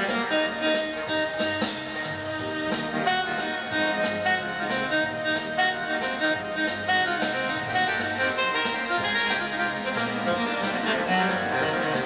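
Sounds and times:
jazz organ playing: 0.0 - 12.0.

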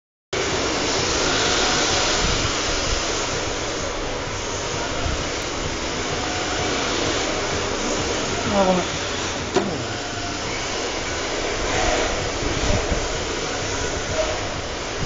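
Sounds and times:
rc cars whirring: 0.4 - 15.0.

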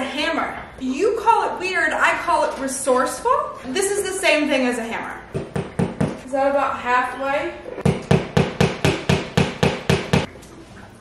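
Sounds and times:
mallet hammering nail: 7.8 - 10.3.

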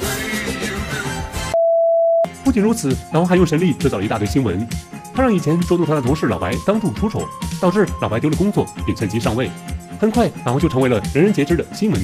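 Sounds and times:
test-tone beep: 1.6 - 2.3.

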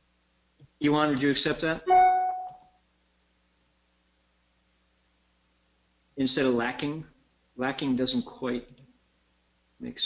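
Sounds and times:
short chime tone: 1.9 - 2.6.

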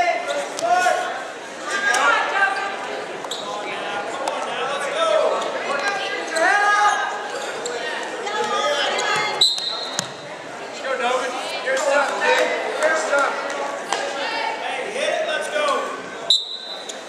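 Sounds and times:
high whistle: 9.4 - 10.0, 16.3 - 17.0.

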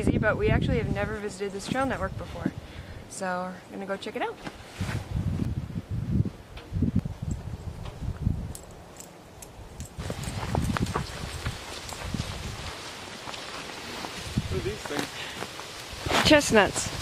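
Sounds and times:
dry leaves rustling underfoot: 10.0 - 17.0.

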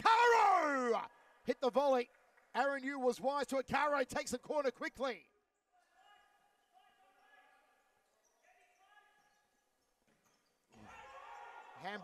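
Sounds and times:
distant voices in a hall: 5.2 - 12.0.

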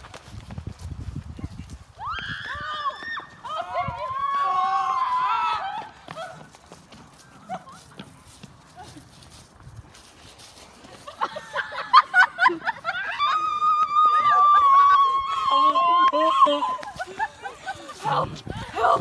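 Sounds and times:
running footsteps: 0.0 - 19.0.

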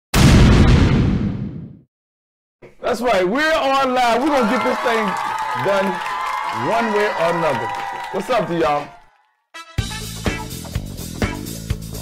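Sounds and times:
explosion boom: 0.1 - 1.8.

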